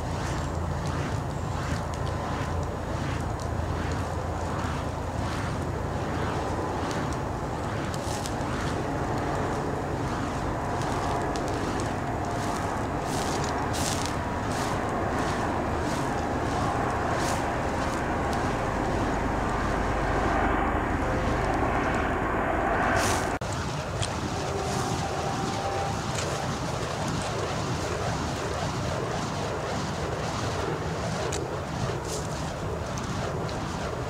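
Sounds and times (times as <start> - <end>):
fire poi flame roaring: 0.0 - 34.0
whooshes of spinning wicks: 0.0 - 34.0.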